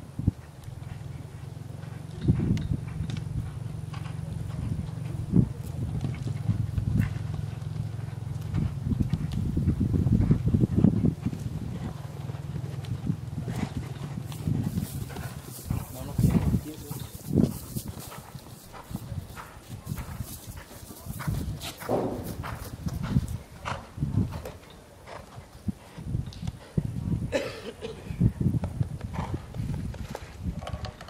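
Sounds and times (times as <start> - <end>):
horse hoofbeats on sand: 0.3 - 27.4, 28.3 - 31.0.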